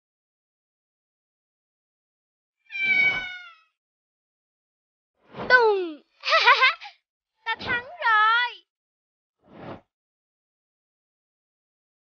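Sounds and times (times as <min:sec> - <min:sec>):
kitten meowing: 0:02.7 - 0:03.7.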